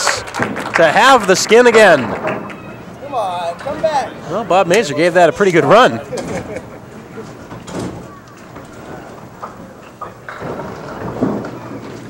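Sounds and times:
low murmur of voices: 1.8 - 12.0.

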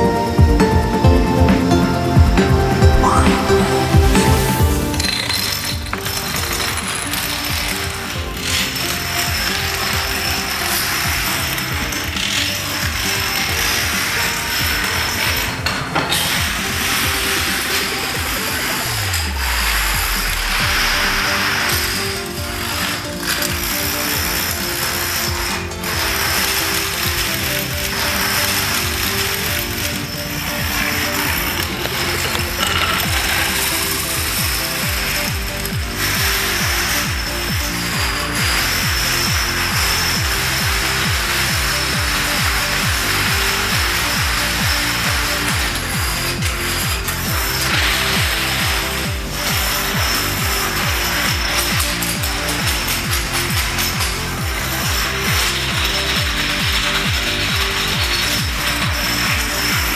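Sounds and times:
plastic dominoes clattering: 3.0 - 59.9.

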